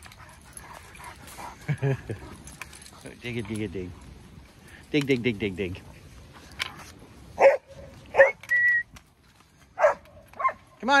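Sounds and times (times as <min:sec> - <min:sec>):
dog barking and whining: 0:07.4 - 0:08.8.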